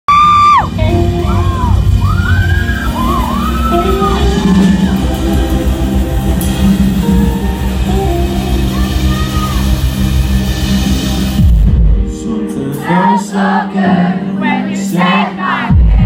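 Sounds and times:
live pop-rock band playing: 0.1 - 15.7.

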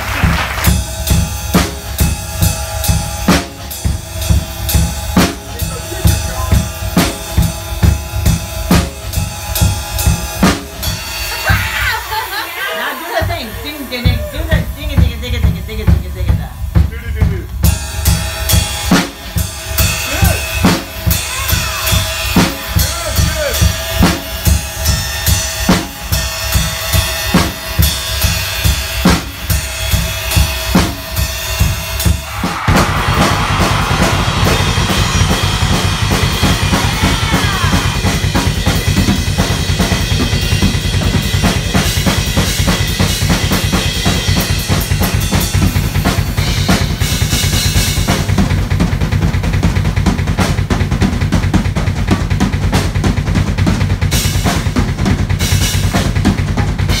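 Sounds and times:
cymbals: 0.0 - 15.5, 17.6 - 48.5
drum kit playing: 0.0 - 57.0.

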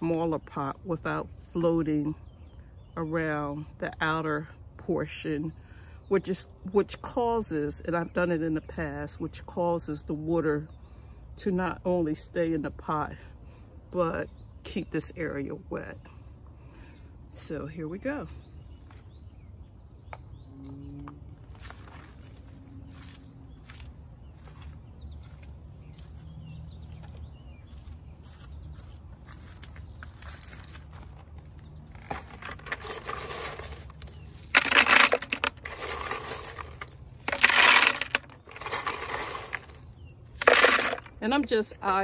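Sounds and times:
gravel crunching and rattling: 21.1 - 42.0.

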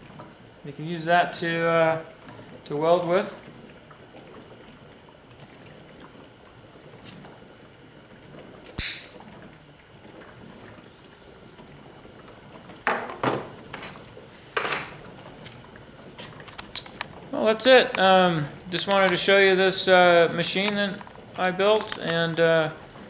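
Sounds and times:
sharp click: 8.8 - 9.2
bubbling hiss: 10.8 - 23.0.

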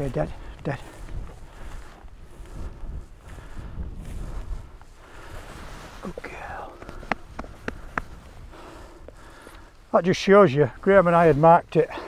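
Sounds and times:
wind rumbling on microphone: 0.0 - 9.9
footsteps through heather: 0.0 - 12.0.

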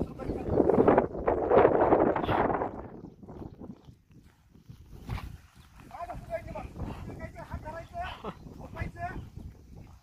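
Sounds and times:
scuffs and knocks on rocky ground: 4.8 - 6.4.

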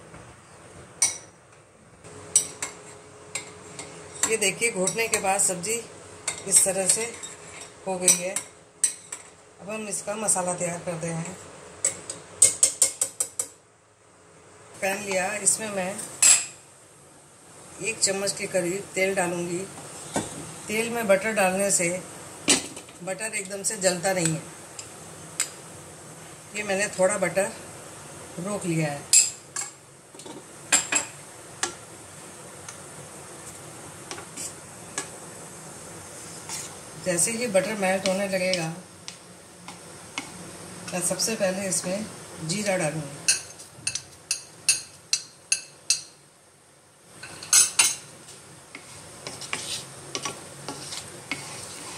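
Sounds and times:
faint steady hiss: 0.0 - 51.9
utensils clinking against pan: 47.2 - 48.0.

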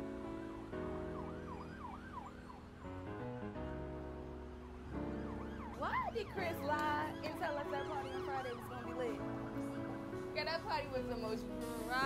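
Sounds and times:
siren wailing: 0.4 - 2.7, 4.6 - 10.1.

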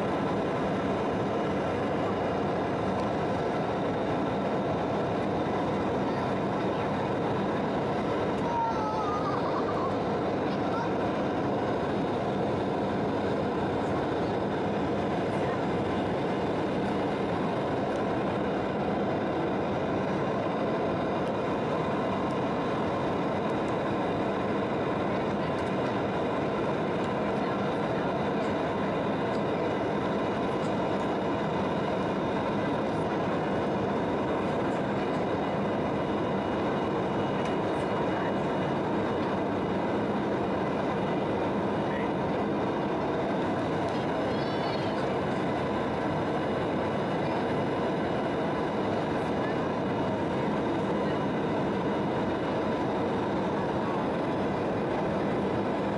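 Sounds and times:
jet engines droning: 0.0 - 55.9.

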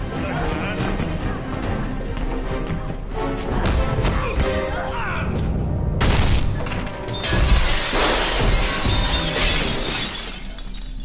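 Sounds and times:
film music: 0.0 - 11.0
glass shattering: 7.1 - 11.0.

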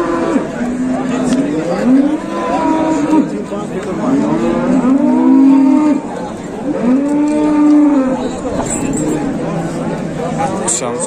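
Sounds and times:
cattle mooing: 0.0 - 8.4.

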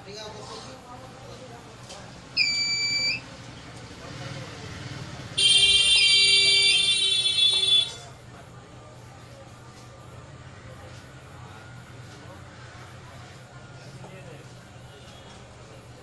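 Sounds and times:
multimeter harsh buzz: 2.4 - 3.2, 5.4 - 8.0
multimeter test beep: 2.4 - 3.3.

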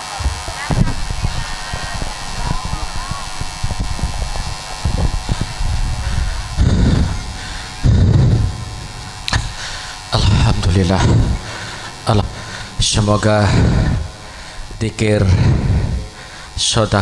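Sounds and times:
electrical hum: 0.0 - 17.0
heavy breaths into microphone: 0.8 - 16.6.

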